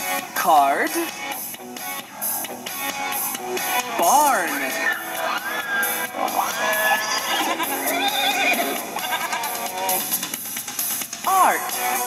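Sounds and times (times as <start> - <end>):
light background music: 0.0 - 12.0
horse whinnying: 4.7 - 9.6.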